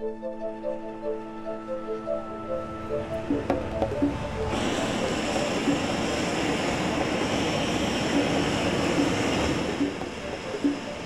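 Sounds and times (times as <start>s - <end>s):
gas burners rushing: 3.1s - 11.0s.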